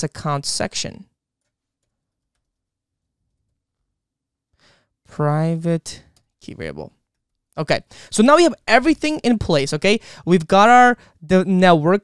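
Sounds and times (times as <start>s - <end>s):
person breathing in: 4.6s - 4.9s, 7.9s - 8.1s, 10.0s - 10.3s.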